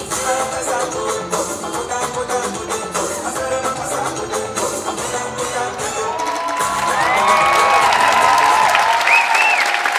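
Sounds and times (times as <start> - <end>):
dance music with percussion: 0.0 - 9.9
audience cheering and whooping: 5.9 - 9.9.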